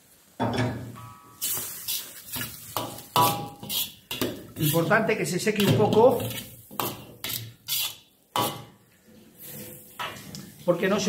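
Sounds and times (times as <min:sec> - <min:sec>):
metal ladle scraping a wok: 0:01.0 - 0:04.9, 0:05.6 - 0:10.4.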